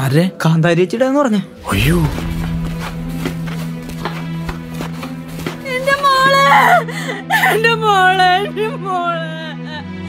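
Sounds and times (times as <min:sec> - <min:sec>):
low drone: 0:01.6 - 0:05.3.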